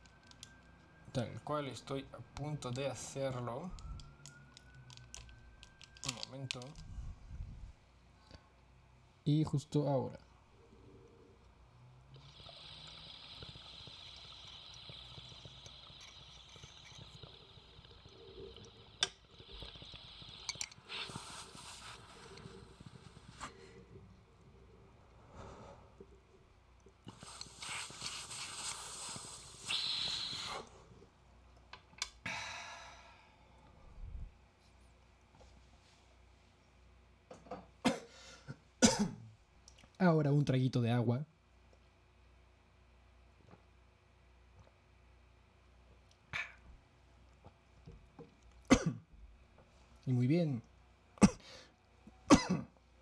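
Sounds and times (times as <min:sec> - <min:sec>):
water bubbling in glass pipe: 0:10.5 - 0:24.8
air hissing: 0:18.2 - 0:23.6, 0:27.1 - 0:30.7
man coughing: 0:37.8 - 0:38.2, 0:38.8 - 0:39.2, 0:48.7 - 0:49.0, 0:52.3 - 0:52.7.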